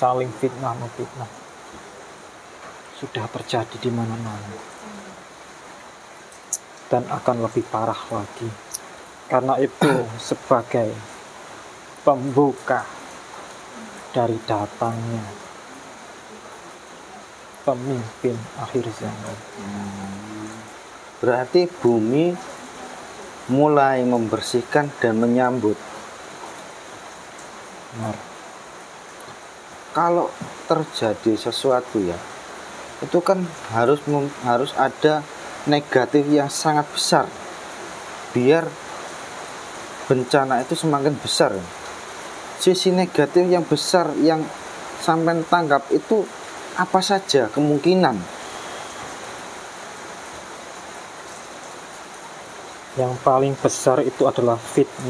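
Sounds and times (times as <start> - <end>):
steady background hiss: 0.0 - 55.0.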